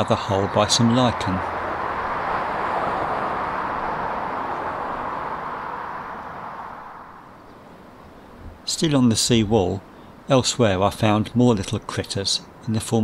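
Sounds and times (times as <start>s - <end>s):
road traffic passing: 0.0s - 13.0s.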